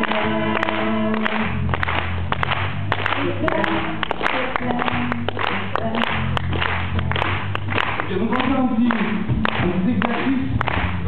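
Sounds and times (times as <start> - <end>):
close hand claps: 0.0 - 11.0.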